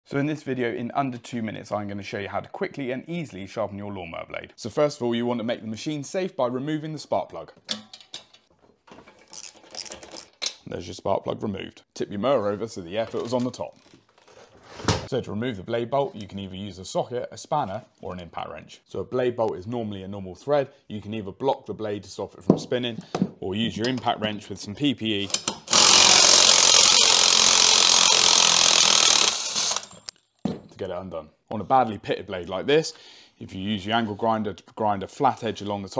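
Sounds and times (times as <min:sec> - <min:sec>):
metal clicking and scraping: 0:07.7 - 0:10.6
impact wrench hammering: 0:25.4 - 0:30.6.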